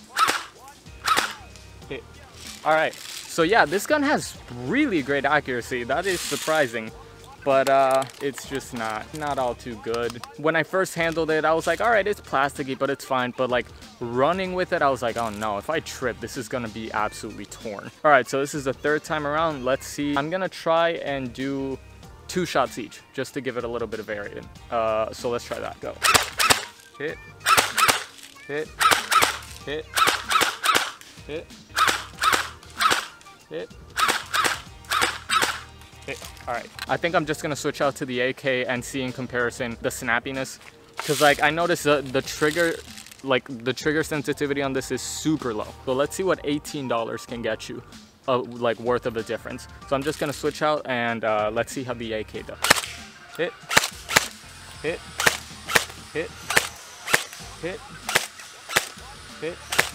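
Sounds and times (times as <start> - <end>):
toy gun firing sharp clicks: 0.0 - 1.4, 26.0 - 26.8, 27.4 - 31.1, 31.8 - 33.2, 34.0 - 35.7, 52.6 - 53.0, 53.7 - 54.4, 55.2 - 59.9
airsoft rifle shots: 0.0 - 1.5, 26.0 - 26.8, 27.4 - 28.2, 28.8 - 31.1, 31.7 - 33.2, 34.0 - 35.7, 52.6 - 53.1, 53.7 - 54.4, 55.2 - 59.9.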